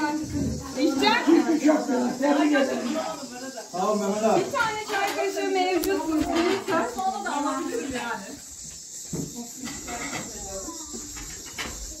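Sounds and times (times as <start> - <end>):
indistinct group conversation: 0.0 - 12.0
steady background hiss: 0.0 - 12.0.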